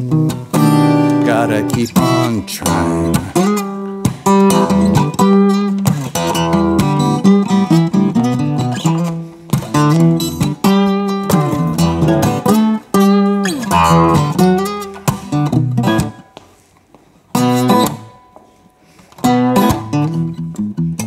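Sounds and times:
acoustic guitar chords: 0.0s - 16.4s, 17.3s - 18.4s, 19.1s - 21.0s.

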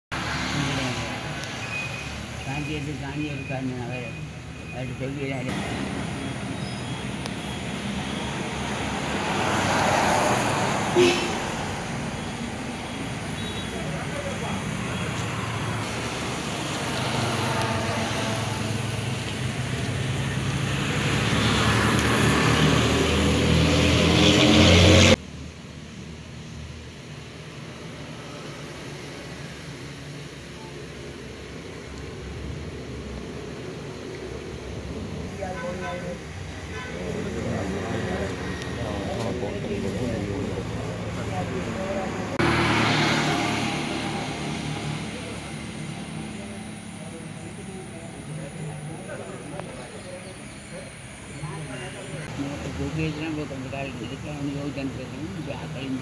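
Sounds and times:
steady outdoor noise: 0.1s - 56.0s
vehicle engine approaching: 0.1s - 56.0s
people talking: 2.4s - 6.7s, 13.4s - 15.4s, 35.0s - 42.5s, 44.1s - 56.0s.

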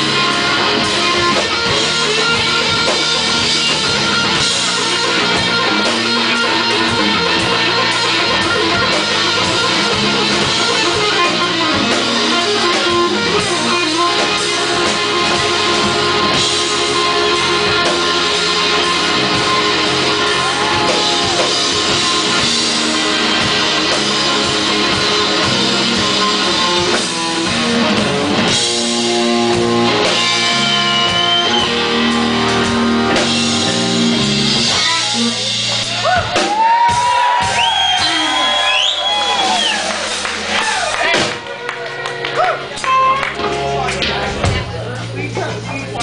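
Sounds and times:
drums: 0.0s - 46.0s
electric guitar playing blues: 0.0s - 46.0s.

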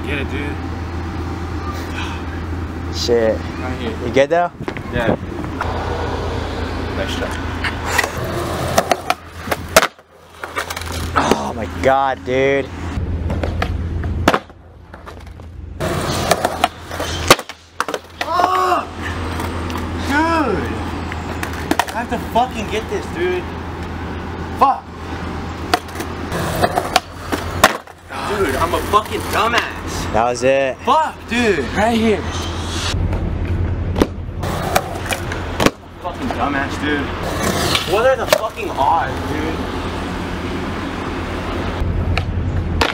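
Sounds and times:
skateboard wheels rolling on concrete: 4.6s - 12.0s, 13.0s - 30.2s, 30.9s - 42.9s
skateboard hitting concrete: 7.9s - 11.4s, 13.2s - 18.6s, 21.4s - 22.2s, 25.7s - 28.0s, 34.0s - 36.4s, 37.2s - 38.7s, 42.2s - 42.9s
skateboard tail pop: 13.3s - 15.2s, 26.6s - 27.9s, 34.0s - 35.8s
people shouting: 18.2s - 19.2s.

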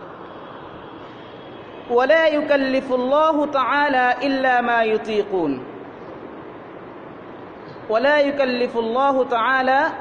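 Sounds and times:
recording hiss: 0.0s - 8.4s.

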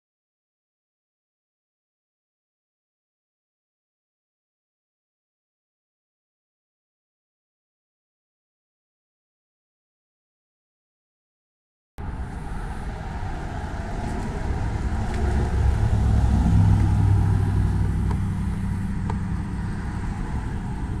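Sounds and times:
vehicle passing by: 12.0s - 21.0s.

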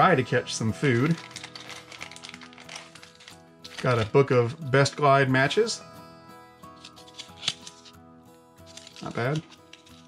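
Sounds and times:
quiet background music: 0.0s - 10.0s
matchbook flipped open: 0.8s - 4.2s, 6.8s - 8.0s, 8.6s - 10.0s.

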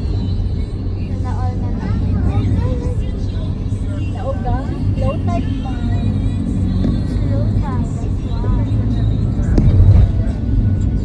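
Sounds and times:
car engine rumble: 0.0s - 11.0s
voices or music: 0.0s - 11.0s.

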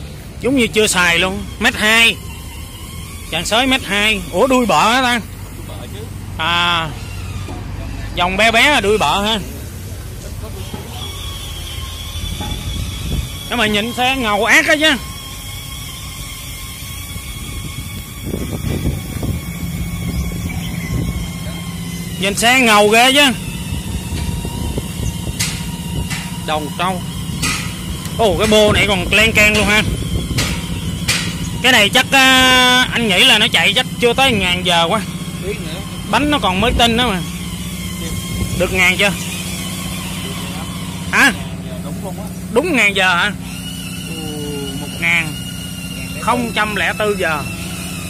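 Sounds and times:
vehicle engine rumble: 0.0s - 48.0s.

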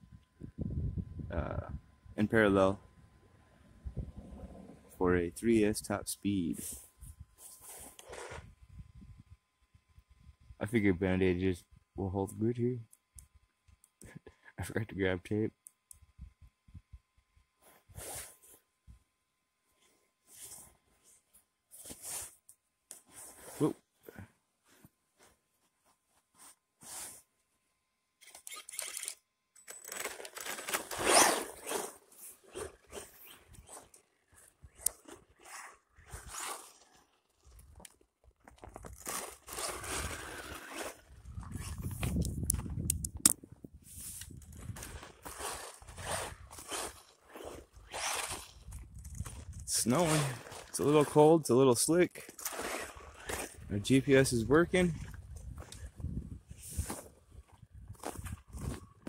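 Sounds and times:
crunching on snow and ice: 30.3s - 42.8s, 43.8s - 59.0s.

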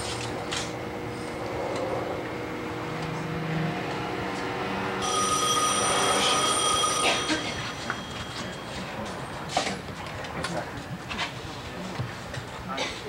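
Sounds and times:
high multi-tone ring: 5.0s - 9.5s
potter's wheel turning: 5.0s - 9.6s.

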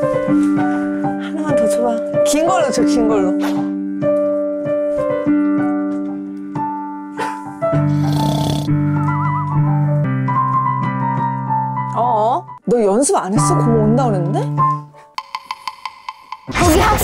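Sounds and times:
digital piano playing slowly: 0.0s - 12.6s, 13.3s - 15.2s.

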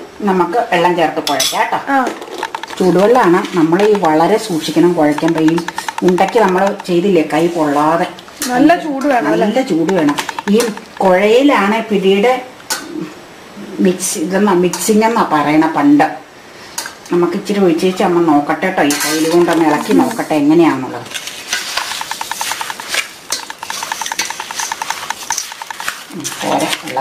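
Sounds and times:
woman speaking: 0.2s - 2.2s, 2.8s - 12.6s, 13.8s - 16.2s, 17.1s - 21.1s
fast even ticking: 2.2s - 11.7s, 19.2s - 20.3s, 21.6s - 26.2s
spatula scraping flour in metal bowl: 21.1s - 27.0s.

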